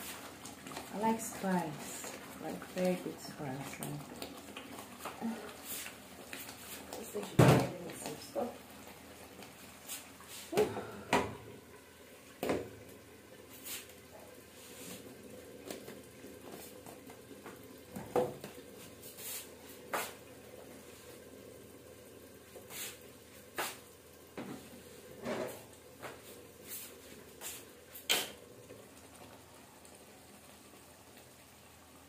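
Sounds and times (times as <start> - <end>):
faint steady hiss: 0.0 - 32.0
kitchen things knocking and clattering: 7.2 - 7.8.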